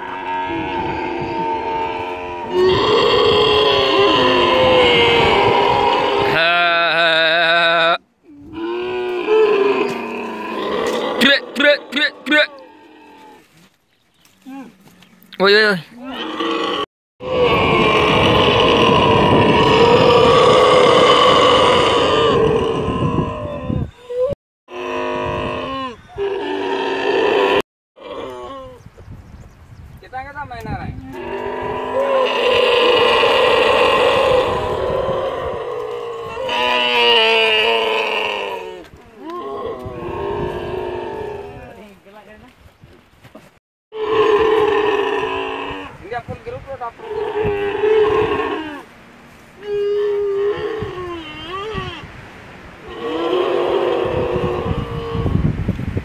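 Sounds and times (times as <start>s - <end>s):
camels groaning: 0.0s - 13.7s, 14.4s - 28.8s, 31.0s - 42.0s, 43.9s - 46.1s, 47.0s - 52.2s, 52.8s - 55.5s
camel calf calling: 49.6s - 52.1s.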